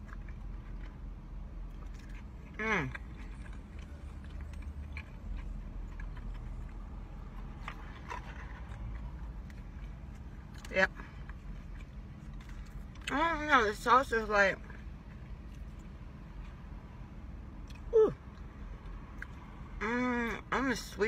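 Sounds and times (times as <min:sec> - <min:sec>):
person chewing: 0:00.0 - 0:13.4, 0:17.6 - 0:19.8
car interior hum: 0:00.0 - 0:21.0.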